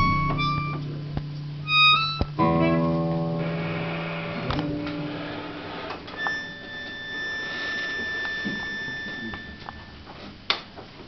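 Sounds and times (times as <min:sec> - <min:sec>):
faint high-pitched tone: 0:06.1 - 0:10.0.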